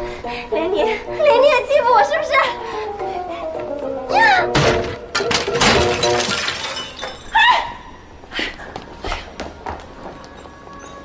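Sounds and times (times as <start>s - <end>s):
glass shattering on stone floor: 5.1s - 7.4s.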